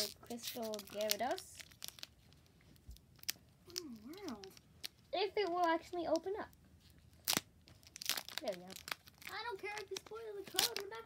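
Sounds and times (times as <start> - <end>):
foil wrapper crackling: 0.0 - 11.0
person humming: 3.7 - 4.4.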